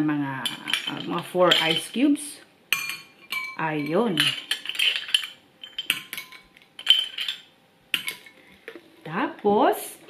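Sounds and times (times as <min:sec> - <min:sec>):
metal spoon clinking on ceramic: 0:00.4 - 0:02.0, 0:02.7 - 0:08.3.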